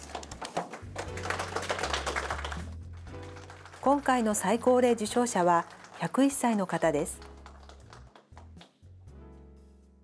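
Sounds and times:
light hand clapping: 0.0 - 3.9, 6.8 - 8.8
background music: 0.0 - 10.0.

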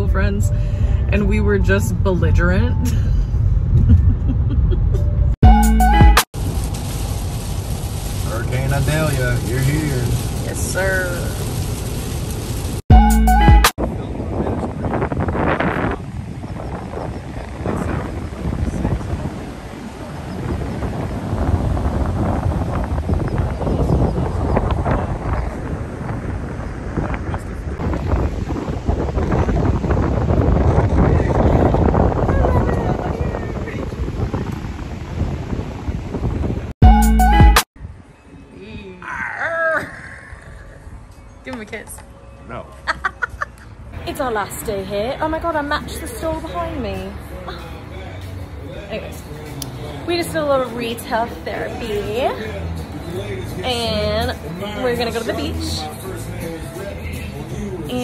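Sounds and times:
car engine and road rumble: 0.0 - 38.7, 40.6 - 58.0
woman laughing softly: 3.8 - 5.2
strong wind buffeting microphone: 13.8 - 36.8.

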